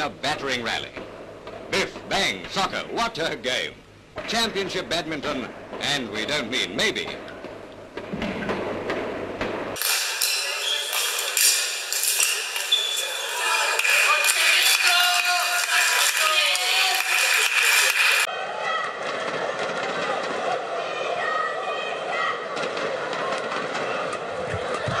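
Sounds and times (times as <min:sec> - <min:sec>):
shuttlecock hits: 0:08.0 - 0:14.6.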